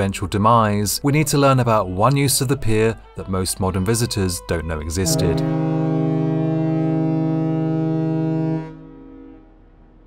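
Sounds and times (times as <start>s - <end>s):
ship's horn blast: 2.6s - 10.0s.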